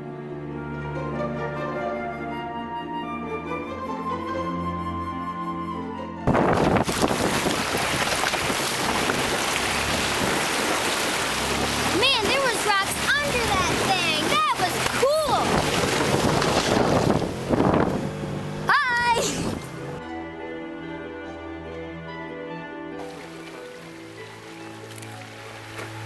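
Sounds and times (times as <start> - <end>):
water churning and splashing: 6.3 - 20.0, 23.0 - 26.0.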